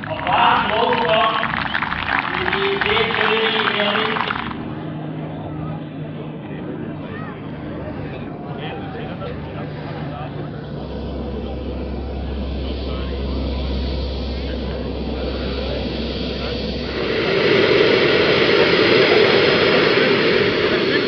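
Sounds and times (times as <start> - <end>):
model jet turbines running: 0.0 - 21.0.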